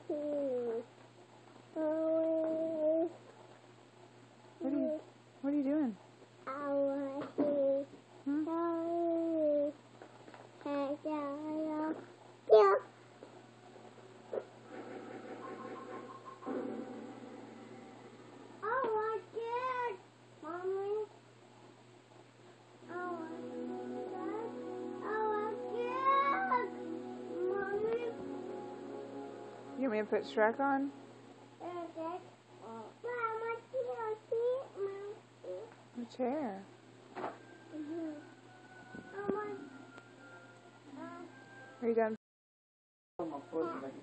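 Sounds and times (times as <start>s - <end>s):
child cooing: 24.2s - 26.7s, 37.7s - 38.4s
child making high-pitched vocal sounds: 25.8s - 26.7s.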